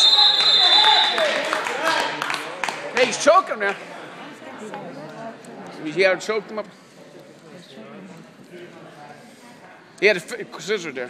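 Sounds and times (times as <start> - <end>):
referee's whistle blast: 0.0 - 1.4.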